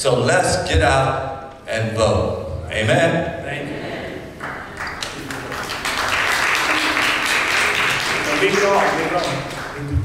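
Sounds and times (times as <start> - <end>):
congregation applauding: 4.4 - 10.0.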